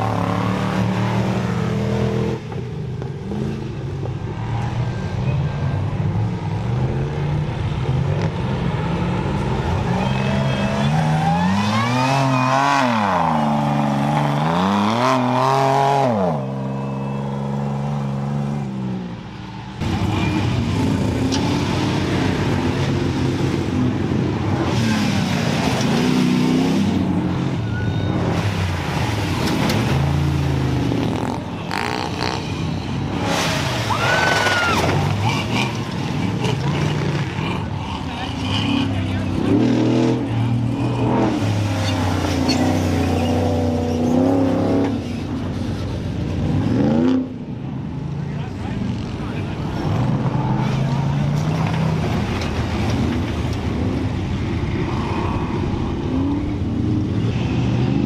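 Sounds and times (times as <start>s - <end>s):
race truck engine revving: 0.0s - 2.6s, 6.3s - 18.9s, 19.8s - 45.6s.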